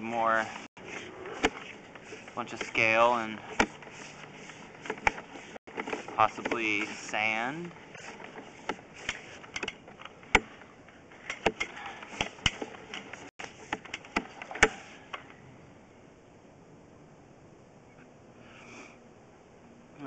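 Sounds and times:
cable clicking and knocking: 1.2 - 15.2.

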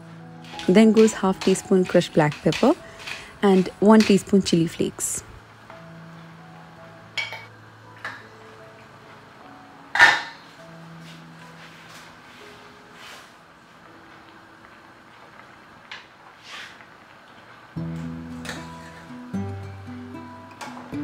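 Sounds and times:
soft background music: 0.0 - 16.2, 16.9 - 21.0
wooden spoon knocking frying pan: 0.6 - 4.4.

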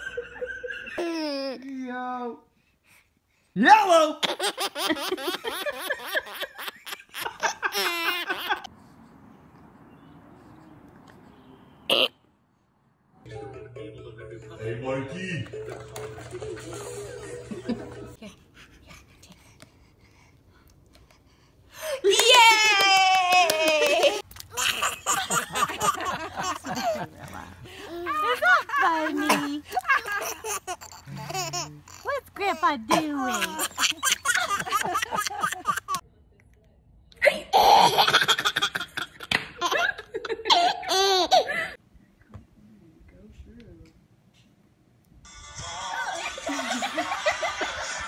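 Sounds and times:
baby laughing: 0.7 - 1.7, 4.2 - 8.7, 23.8 - 36.0, 37.5 - 41.7
baby breathing softly: 2.5 - 3.6, 18.3 - 21.9.

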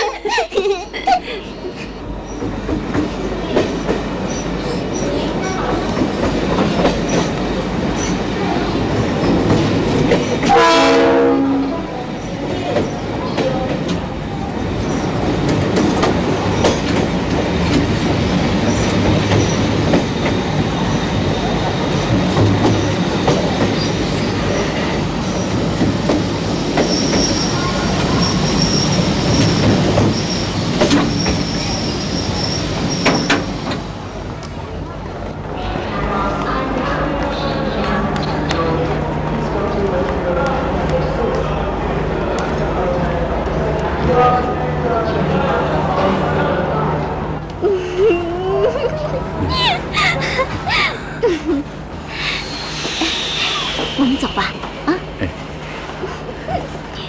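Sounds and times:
train wheels rumbling on rails: 0.0 - 57.0
train horn blast: 10.4 - 11.9.

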